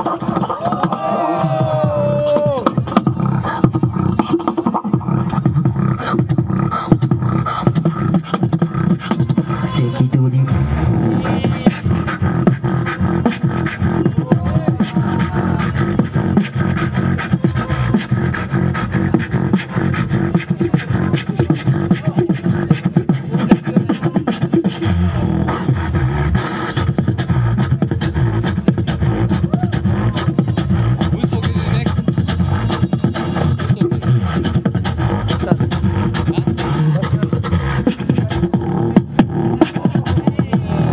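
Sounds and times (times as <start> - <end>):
beatboxing into a microphone: 0.0 - 40.9
deep bass drone: 0.0 - 40.9.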